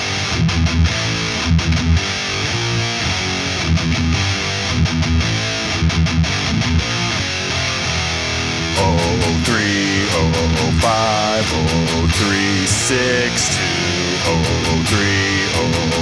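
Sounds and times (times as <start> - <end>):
distorted electric guitar riff: 0.0 - 16.0.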